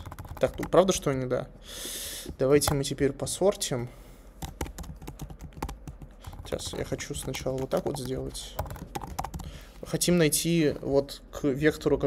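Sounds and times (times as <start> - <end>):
computer keyboard typing: 0.0 - 1.1, 4.4 - 9.9.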